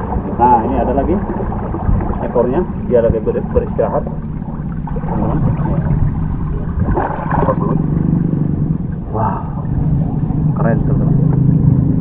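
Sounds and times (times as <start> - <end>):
steady low hum: 0.0 - 12.0
indistinct voices: 9.0 - 11.4.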